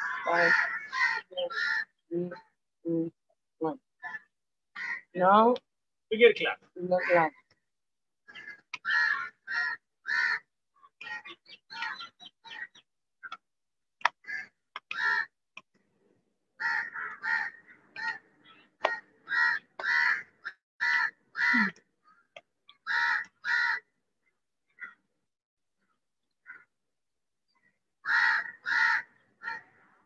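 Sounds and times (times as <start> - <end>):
crows cawing: 0.0 - 2.0, 4.0 - 5.2, 8.3 - 12.8, 14.1 - 15.4, 16.6 - 24.0, 24.7 - 25.0, 26.4 - 26.7, 28.0 - 30.0.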